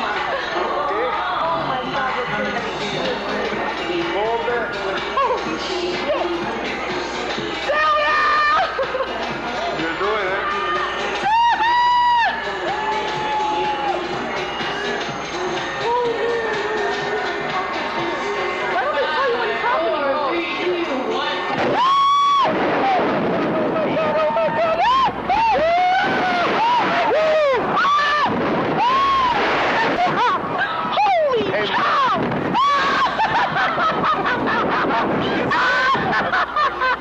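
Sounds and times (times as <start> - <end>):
indistinct chatter: 0.0 - 37.0
women screaming: 7.7 - 8.8, 10.4 - 14.1, 21.7 - 23.0, 23.8 - 34.4, 35.2 - 36.9
rushing noise: 21.6 - 37.0.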